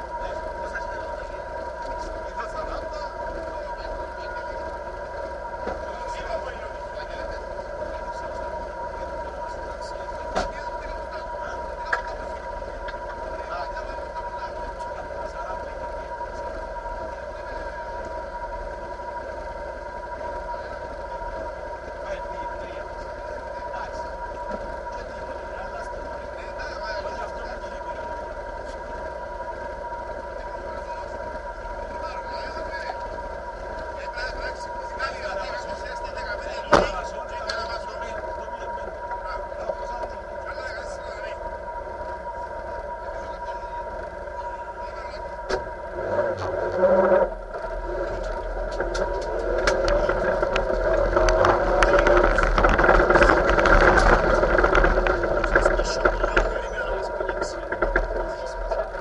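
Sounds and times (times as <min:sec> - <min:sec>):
car engine idling: 0:00.0 - 0:59.0
muffled voices: 0:00.0 - 0:59.0.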